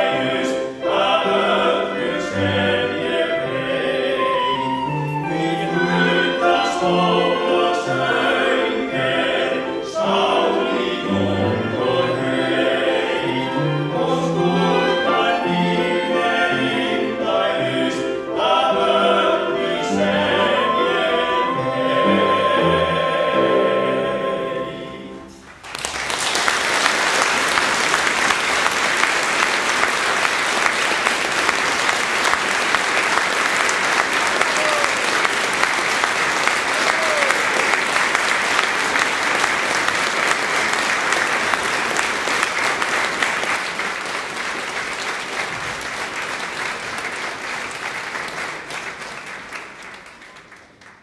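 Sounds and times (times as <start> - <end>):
large audience applauding: 25.4 - 51.0.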